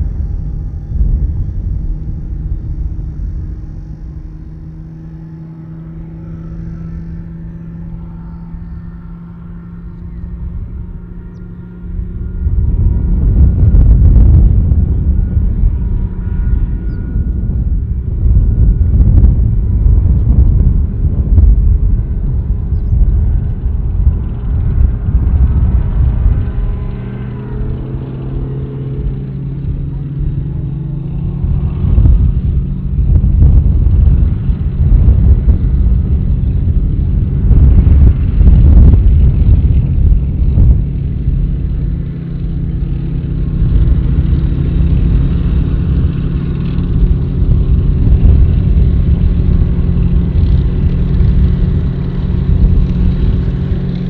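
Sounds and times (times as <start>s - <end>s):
heavy vehicle engines rumbling: 0.0s - 54.0s
tracked vehicles on gravel: 0.0s - 54.0s.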